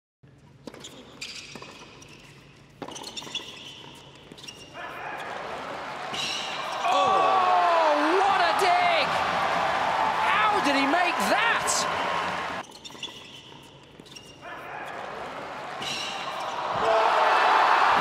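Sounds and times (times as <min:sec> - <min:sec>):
crowd cheering and shouting: 0:04.9 - 0:12.6, 0:14.6 - 0:18.0.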